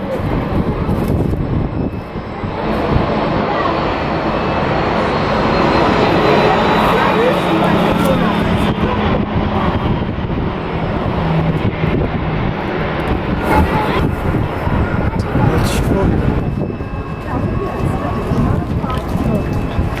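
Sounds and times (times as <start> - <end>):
jet engines roaring: 0.0 - 20.0.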